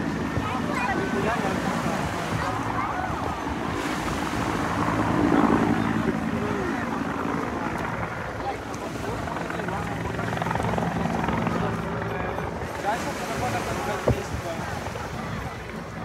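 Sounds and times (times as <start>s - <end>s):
crowd chatter: 0.0s - 16.0s
helicopter flying overhead: 0.0s - 16.0s.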